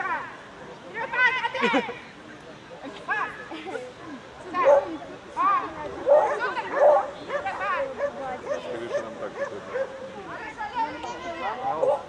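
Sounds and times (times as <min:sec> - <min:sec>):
dog barking and yipping: 0:06.0 - 0:10.0.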